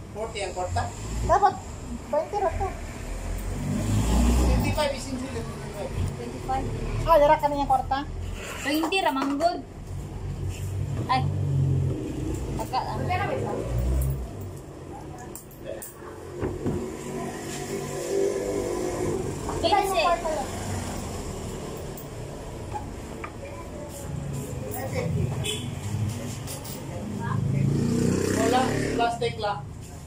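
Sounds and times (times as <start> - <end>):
motor vehicle passing: 0.0 - 30.0.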